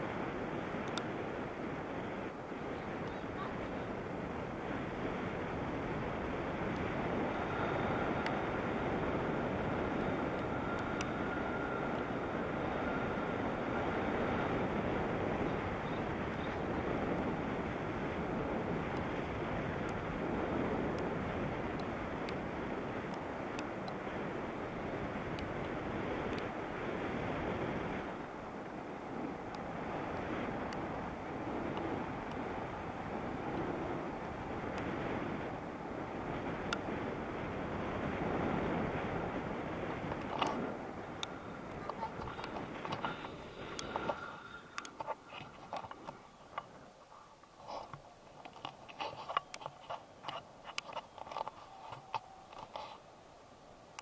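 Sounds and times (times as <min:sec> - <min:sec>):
wind rushing over microphone: 0:00.0 - 0:54.0
faint ticks: 0:00.8 - 0:01.1, 0:10.3 - 0:11.2, 0:40.0 - 0:53.0.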